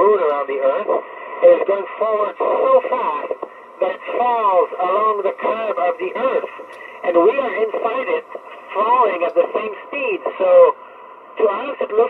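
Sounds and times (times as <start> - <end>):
person speaking over radio: 0.3 - 10.8.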